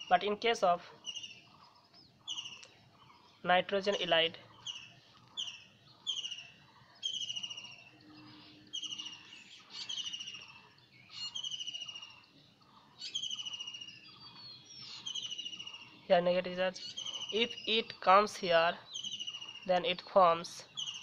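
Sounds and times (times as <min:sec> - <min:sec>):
bird trilling calls: 0:00.0 - 0:21.0.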